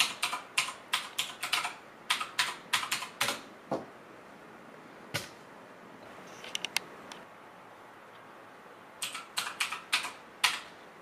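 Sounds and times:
typing on computer keyboard: 0.0 - 3.5, 9.0 - 10.7.

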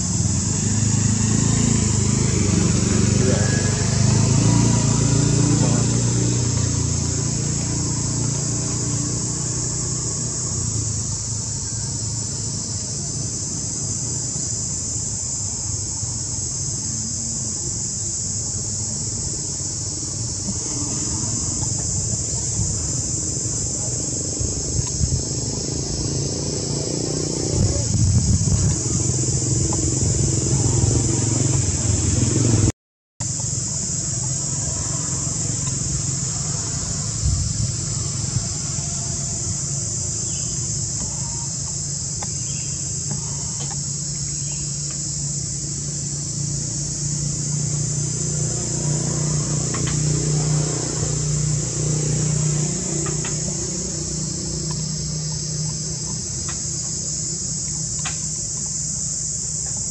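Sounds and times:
high-pitched insect chorus: 0.0 - 59.9.

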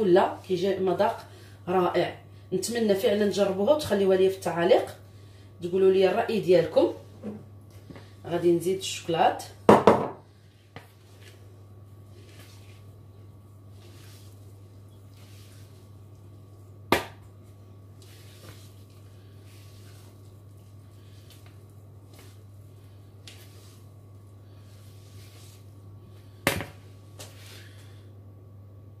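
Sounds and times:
steady low hum: 0.0 - 29.0
spatula scraping batter in bowl: 13.7 - 16.2.

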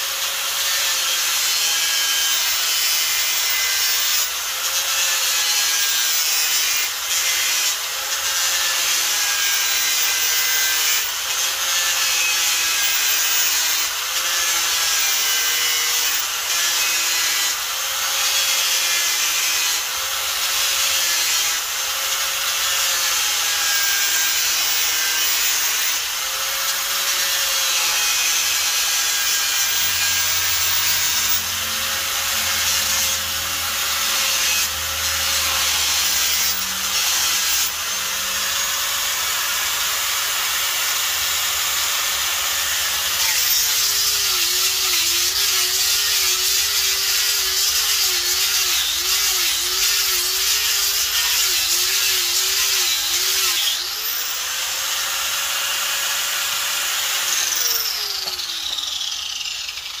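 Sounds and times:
angle grinder sanding wood: 0.0 - 60.0.

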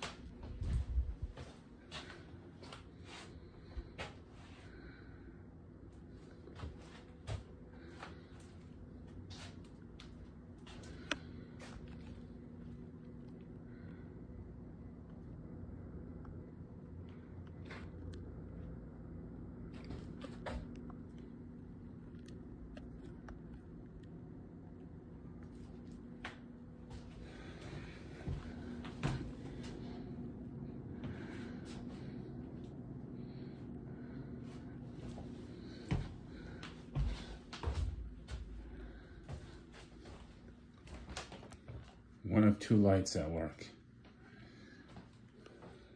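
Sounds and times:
steady low room hum: 0.0 - 45.9.

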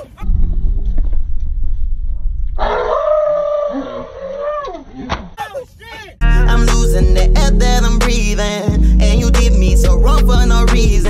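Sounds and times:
low rumbling noise: 0.0 - 4.2
young man yelling: 5.4 - 6.2.

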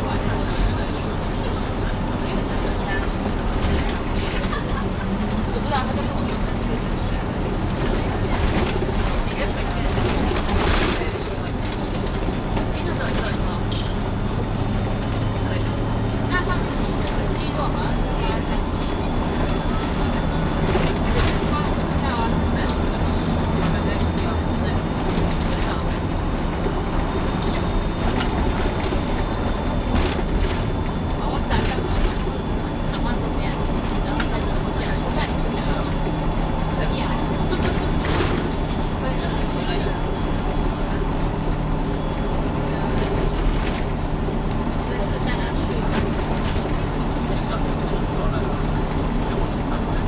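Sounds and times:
low engine drone: 0.0 - 50.0
road noise: 0.0 - 50.0.

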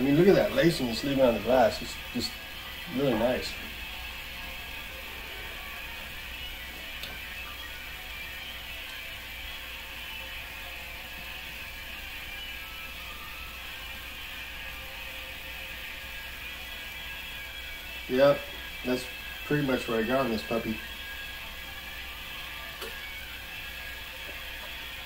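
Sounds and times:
ceiling fan whirring: 0.0 - 25.0.

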